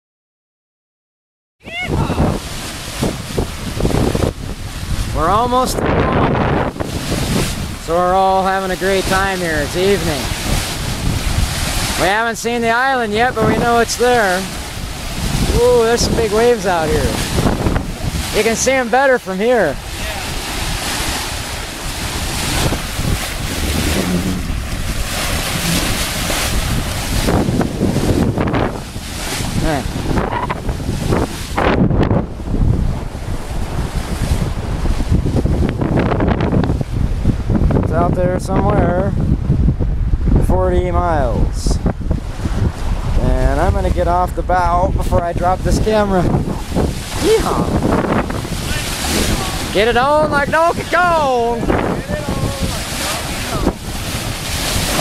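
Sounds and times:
sea rushing: 1.6 - 55.0
wind buffeting microphone: 1.6 - 55.0.

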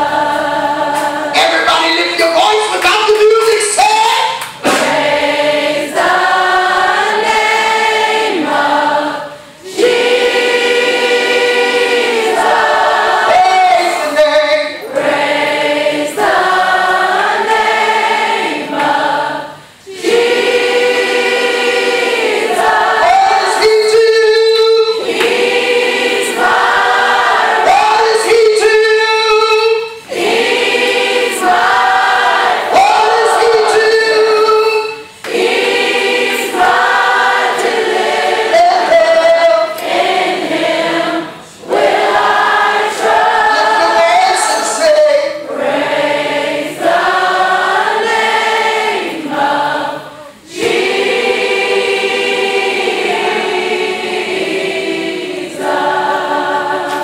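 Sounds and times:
congregation singing gospel song: 0.0 - 57.0.

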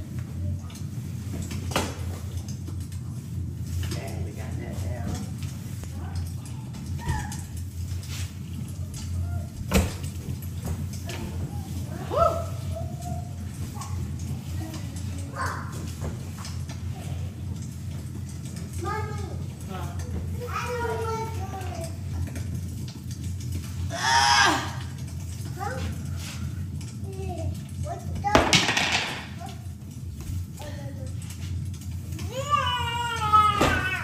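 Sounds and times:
toddlers babbling and squealing: 11.4 - 14.1, 32.2 - 34.0.

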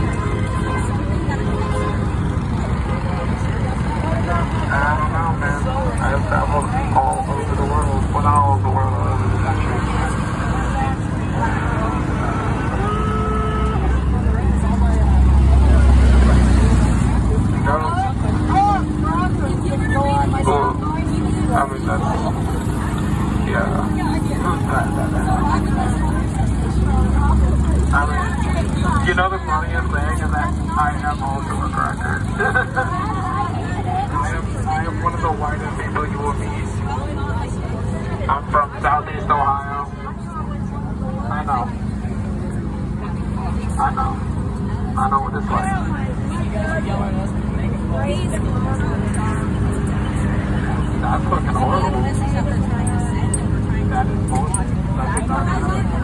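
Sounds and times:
people talking over one another: 0.0 - 56.0
vehicle engine rumble: 0.0 - 56.0.

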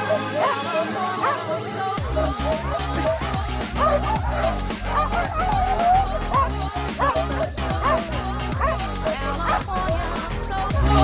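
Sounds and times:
sled dogs barking and yelping: 0.0 - 11.0
electronic dance music: 0.9 - 11.0.

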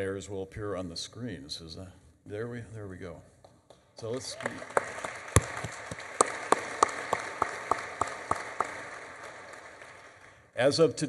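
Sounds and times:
audience applauding: 4.0 - 10.4
close person clapping: 4.0 - 10.4.

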